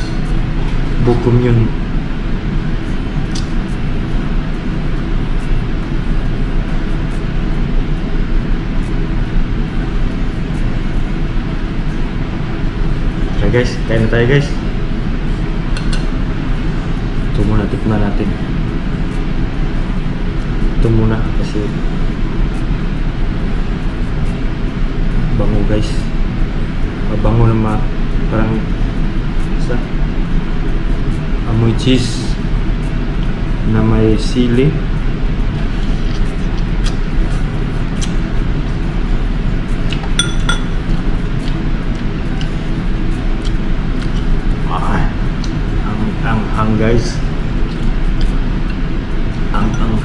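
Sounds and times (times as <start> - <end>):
low background hum: 0.0 - 50.0
eating and chewing noodles: 39.7 - 40.2, 40.8 - 44.6
metal fork knocking on dishes: 40.2 - 40.7
metallic tableware clink: 40.2 - 40.7.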